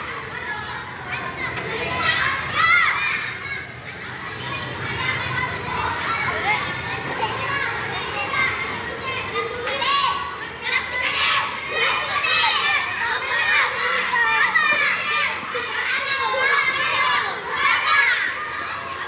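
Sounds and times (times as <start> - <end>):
children playing and shouting: 0.0 - 19.0
high-pitched child shout: 7.2 - 19.0.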